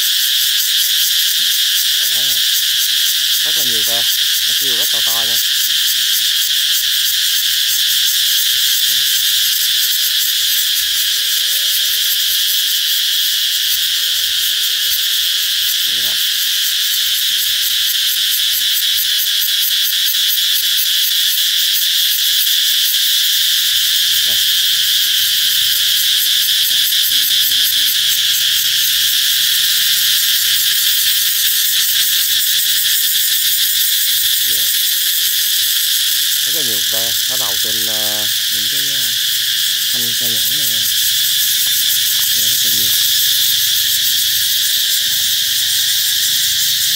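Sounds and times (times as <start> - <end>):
cicadas buzzing: 0.0 - 46.9.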